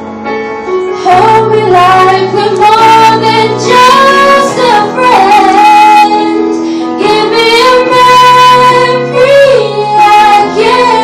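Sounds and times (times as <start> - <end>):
sustained instrumental accompaniment: 0.0 - 11.0
woman singing into a microphone: 1.0 - 11.0.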